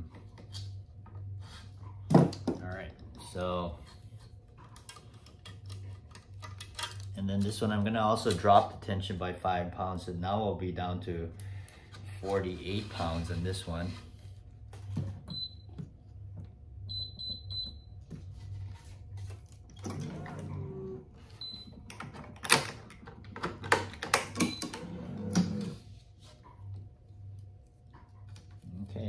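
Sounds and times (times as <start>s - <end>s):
faint steady hum: 0.0s - 29.0s.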